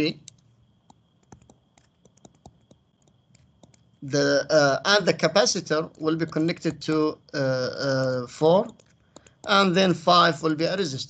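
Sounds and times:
stylus tapping on tablet screen: 0:00.2 - 0:04.2, 0:05.9 - 0:07.0, 0:07.9 - 0:09.6.

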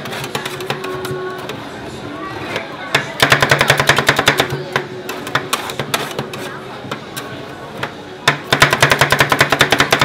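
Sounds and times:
metal spatulas tapping and scraping: 0:00.0 - 0:01.6, 0:02.9 - 0:10.0.

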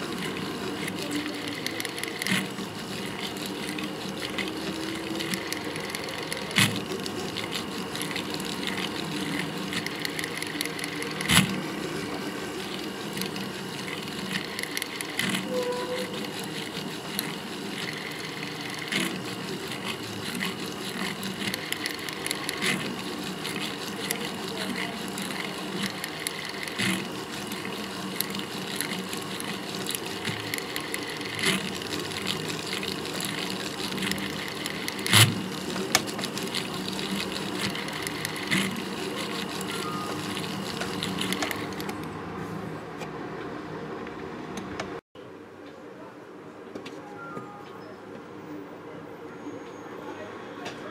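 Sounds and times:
motorised handpiece running: 0:00.0 - 0:42.2.

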